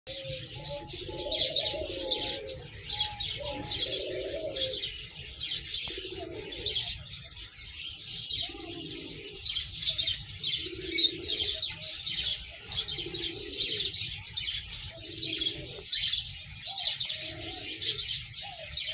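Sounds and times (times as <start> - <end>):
pigeons cooing: 0.1 - 18.9
small birds chirping: 0.1 - 18.9.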